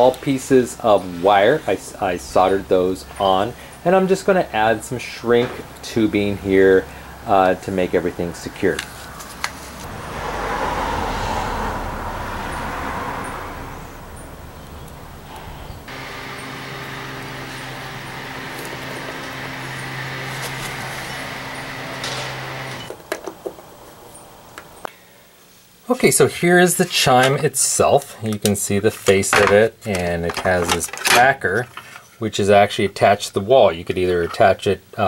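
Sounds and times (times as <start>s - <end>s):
vehicle engine and road noise: 5.4s - 24.9s
low engine hum: 9.6s - 22.9s.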